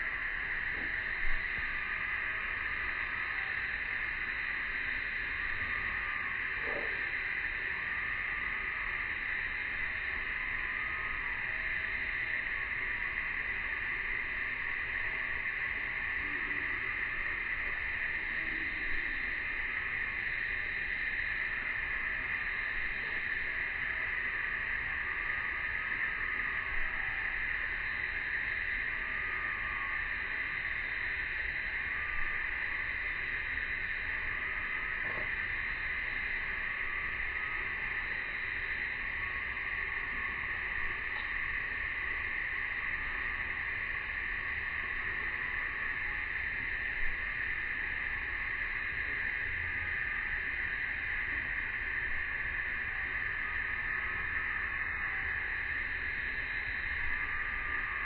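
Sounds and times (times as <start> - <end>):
cicada chorus drone: 0.0 - 58.0.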